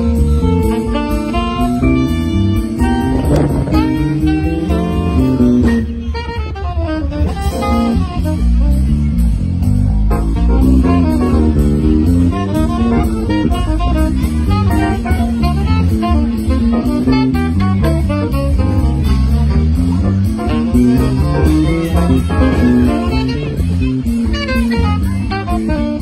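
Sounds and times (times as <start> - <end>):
bass and drum kit: 0.0 - 26.0
electric guitar: 0.0 - 26.0
saxophone: 0.0 - 26.0.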